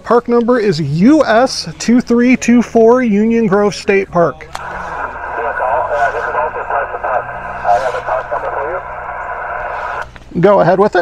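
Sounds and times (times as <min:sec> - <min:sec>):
tinny radio speech: 0:04.5 - 0:10.0
static hiss: 0:04.6 - 0:10.2.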